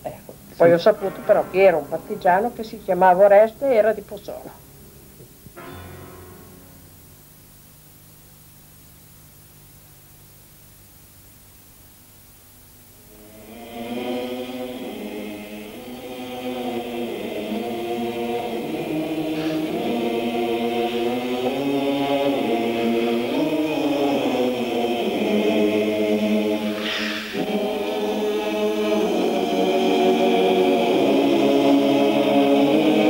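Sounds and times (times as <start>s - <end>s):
choir singing slow song: 0.5s - 3.4s, 13.0s - 33.0s.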